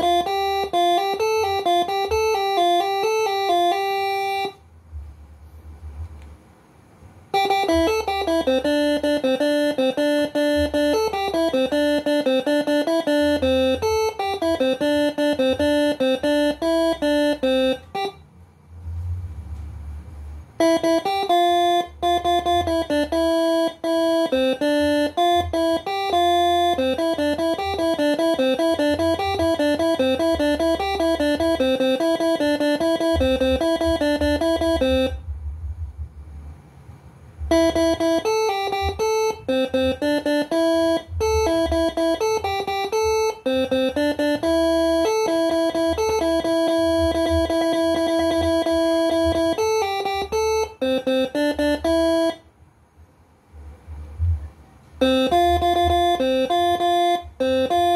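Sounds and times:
air horns playing quick tunes: 7.3s - 18.2s, 18.8s - 35.2s.

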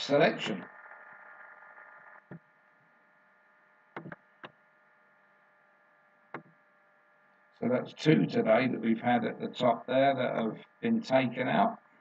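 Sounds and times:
faint steady hum: 0.0s - 12.0s
computer mouse clicks: 4.0s - 4.6s, 6.4s - 6.6s.

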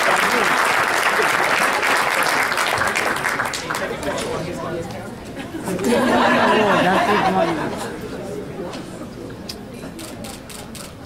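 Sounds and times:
background chatter in large hall: 0.0s - 11.0s.

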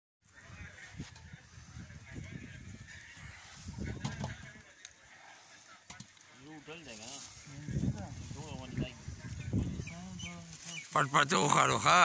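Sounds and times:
low indistinct voices: 0.2s - 12.0s.

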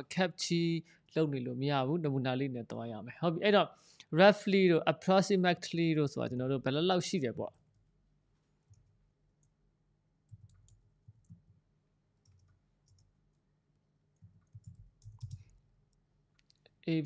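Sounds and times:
keyboard typing: 8.6s - 9.6s, 10.2s - 11.6s, 12.2s - 13.4s, 14.1s - 16.6s.

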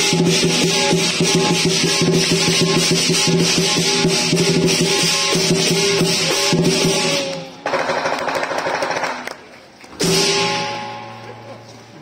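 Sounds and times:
cymbals and gong ringing: 0.0s - 7.8s, 10.0s - 11.7s
fast drum roll: 0.0s - 9.1s
drum beating: 0.0s - 9.2s.

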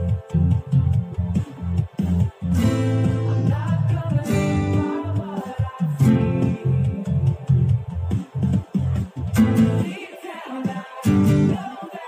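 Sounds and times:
acoustic guitar strumming chords: 2.4s - 8.0s, 9.3s - 10.2s, 11.0s - 11.9s.

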